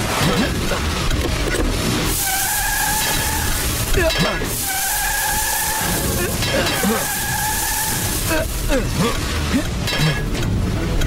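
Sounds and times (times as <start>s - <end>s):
car tyres screeching: 0.0s - 11.0s.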